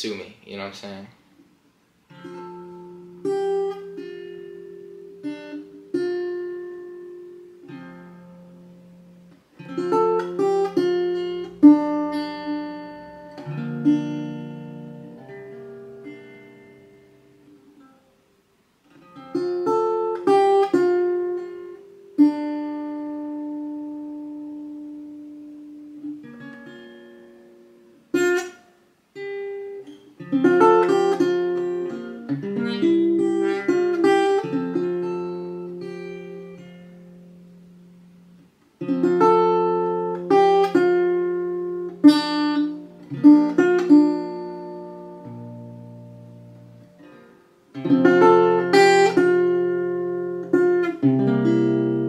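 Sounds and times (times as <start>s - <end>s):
solo acoustic guitar: 1.3s - 52.0s.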